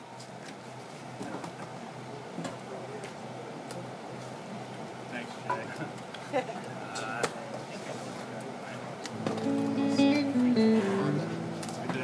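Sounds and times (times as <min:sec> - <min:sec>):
guitar playing held notes: 0:09.1 - 0:12.0.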